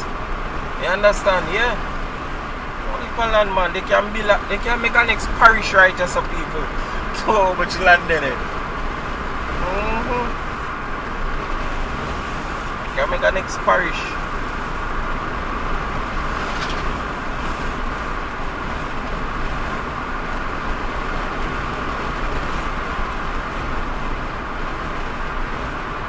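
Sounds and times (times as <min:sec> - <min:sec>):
car engine hum: 0:00.0 - 0:26.0.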